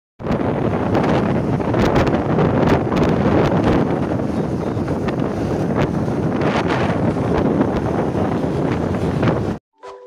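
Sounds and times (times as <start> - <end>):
wind buffeting microphone: 0.2 - 9.6.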